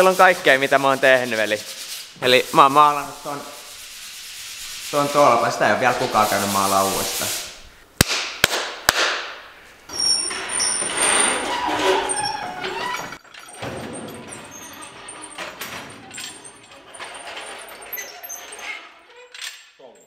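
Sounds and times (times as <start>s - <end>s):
sharp claps: 8.0s - 9.4s
loud noisy scraping: 9.9s - 19.0s
metallic clattering of chain: 9.9s - 20.0s.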